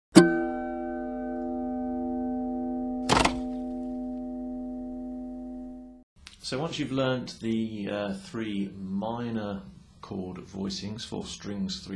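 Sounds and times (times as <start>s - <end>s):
sustained ringing chord: 0.2s - 6.1s
short thump: 3.1s - 3.6s.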